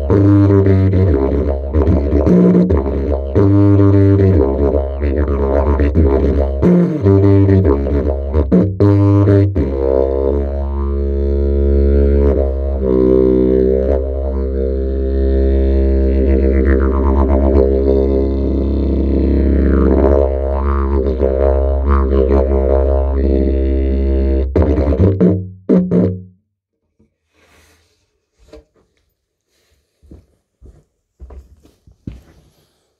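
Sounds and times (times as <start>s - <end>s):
didgeridoo drone: 0.0s - 26.2s.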